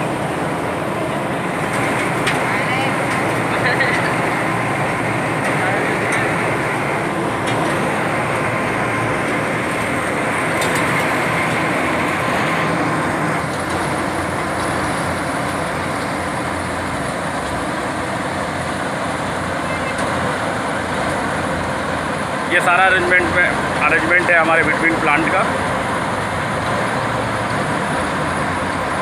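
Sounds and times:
steady machinery noise: 0.0 - 29.0.

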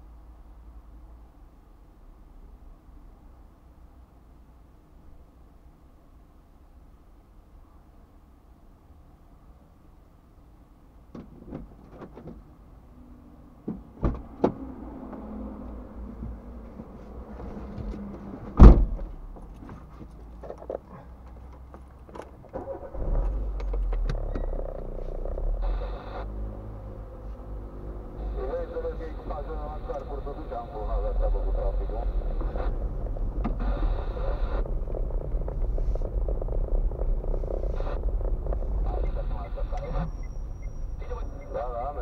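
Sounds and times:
car engine running: 14.4 - 42.0
car door slam: 18.5 - 19.1.

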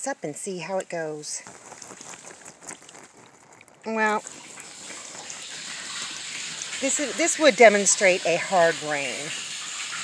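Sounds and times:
water splashing onto plastic tarp: 1.4 - 10.0.

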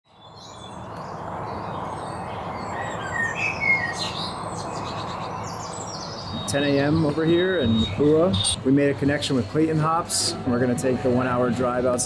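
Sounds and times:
birds chirping: 0.1 - 12.0
outdoor background hiss: 0.1 - 12.0.

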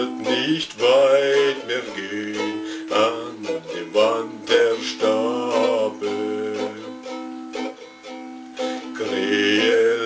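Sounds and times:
ukulele strumming: 0.0 - 10.0.

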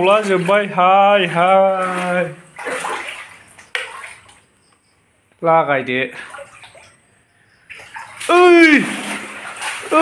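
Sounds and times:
water splashing across concrete floor: 0.0 - 4.8, 6.0 - 10.0
person speaking: 8.3 - 9.0.

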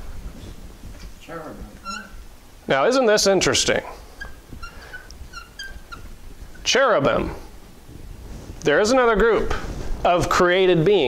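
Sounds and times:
marker squeaking on whiteboard: 1.7 - 2.3, 4.0 - 6.7.

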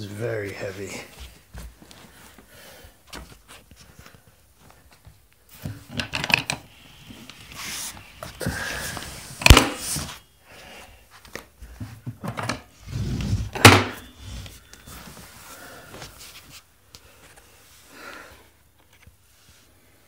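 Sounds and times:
bubble wrap and cardboard rustling: 6.7 - 10.3.

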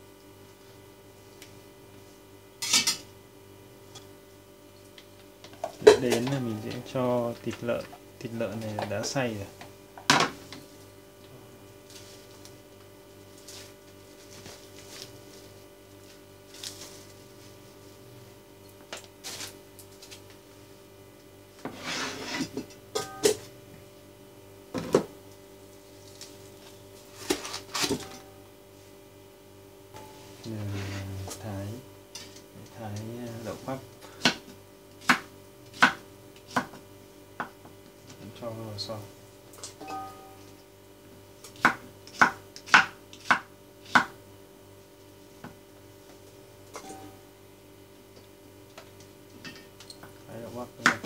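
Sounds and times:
steady low hum: 0.0 - 51.0
meat scraped into pot: 21.6 - 22.6
knife chopping on cutting board: 34.2 - 36.8, 41.6 - 44.2.

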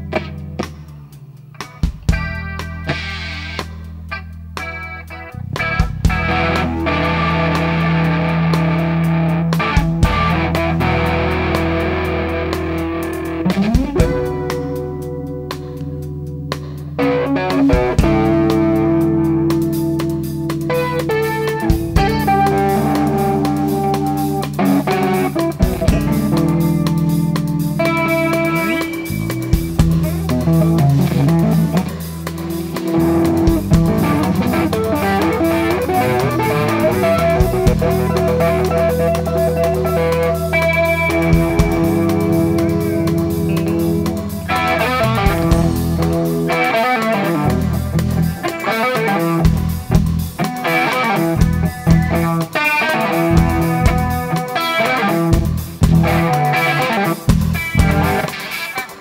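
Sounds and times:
bass guitar: 0.0 - 59.0
drums: 0.0 - 59.0
electric guitar lead: 0.0 - 59.0.

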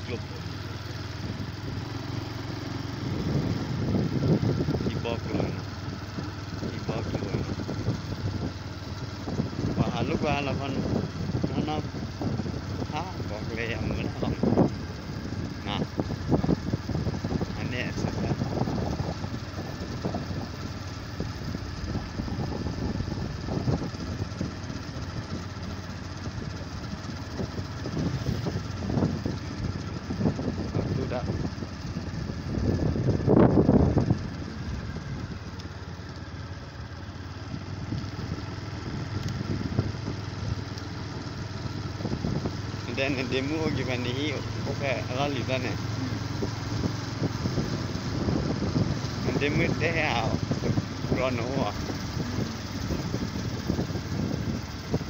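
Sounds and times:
motor scooter engine: 0.0 - 55.0
road noise: 0.0 - 55.0.

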